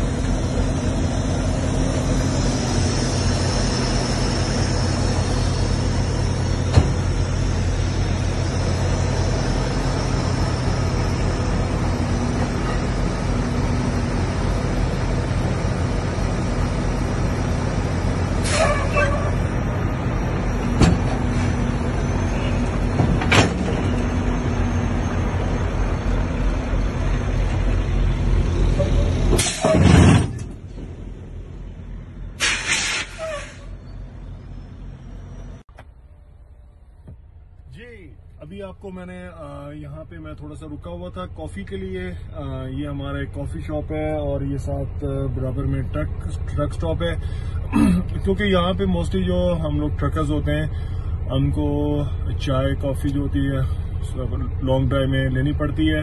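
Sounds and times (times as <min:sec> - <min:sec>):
diesel truck engine idling: 0:00.0 - 0:29.6, 0:30.4 - 0:56.0.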